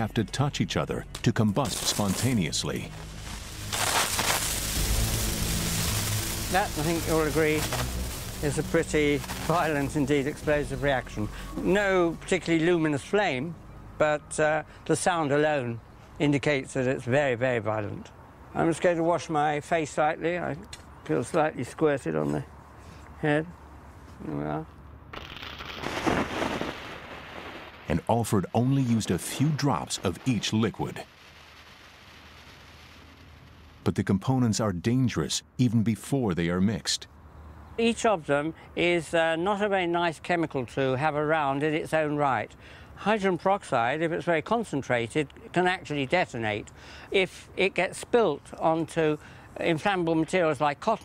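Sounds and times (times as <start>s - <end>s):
rocket motor rushing hiss: 3.0s - 10.4s.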